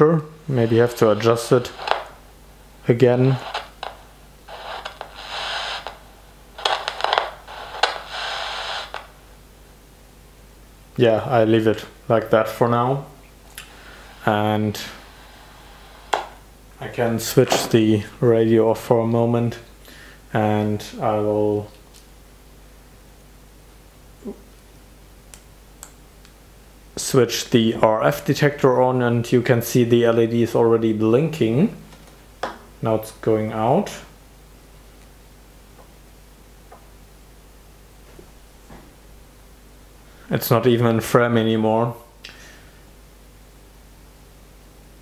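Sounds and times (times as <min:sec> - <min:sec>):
radio crackles: 0:00.0 - 0:09.3, 0:13.6 - 0:17.8
radio static hiss: 0:00.0 - 0:19.7
faint steady hum: 0:00.0 - 0:45.0.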